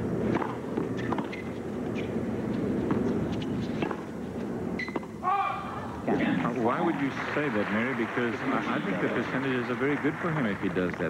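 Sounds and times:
racket hitting tennis ball: 0.2 - 4.2.

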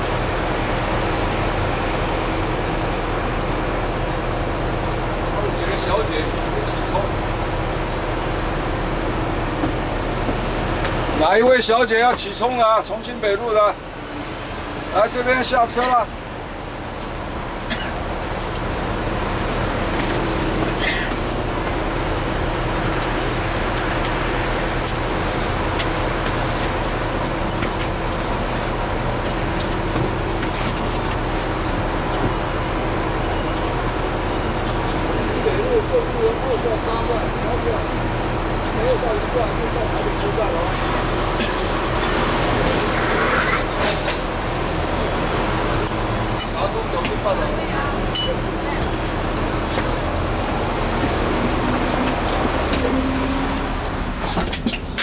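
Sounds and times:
diesel bus engine idling: 0.0 - 55.0
voices talking: 4.9 - 9.8, 31.2 - 53.9.

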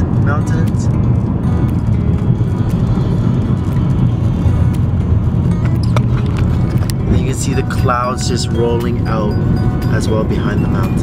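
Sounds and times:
background music: 0.0 - 11.0
car road and engine rumble: 0.0 - 11.0.

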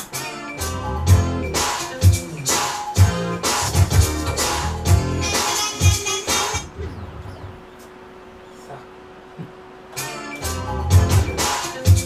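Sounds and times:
music from speakers: 0.0 - 6.7, 9.9 - 12.0
bass beat: 0.6 - 7.7, 10.4 - 12.0
faint steady hum: 4.7 - 12.0.

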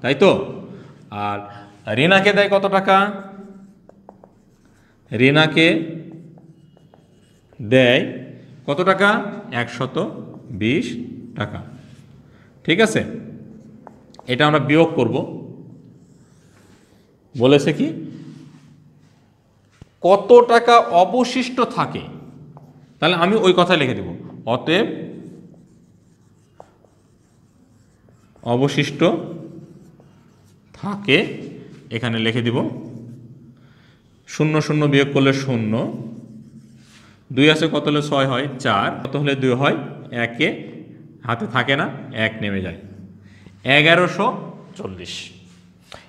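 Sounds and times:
person speaking: 0.0 - 18.8, 19.8 - 33.5, 34.3 - 45.8
marker pen writing on whiteboard: 0.4 - 17.1, 17.7 - 33.4, 34.3 - 39.2
marker pen squeak: 6.1 - 7.6.

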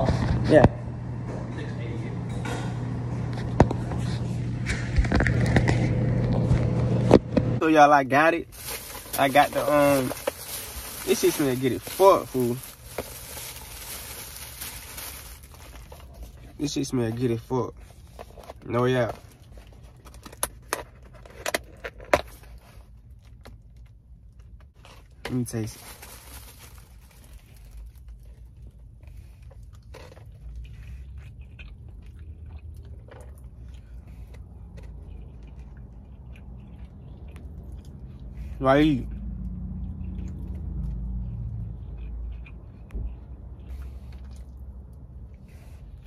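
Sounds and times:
low steady hum: 0.0 - 46.0
plastic bag rustling: 8.1 - 17.0, 25.3 - 28.1
person chewing food: 8.7 - 16.6, 27.0 - 46.0.

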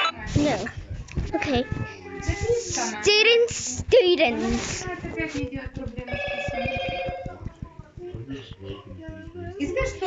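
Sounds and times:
rapid low clicks: 5.1 - 10.0.

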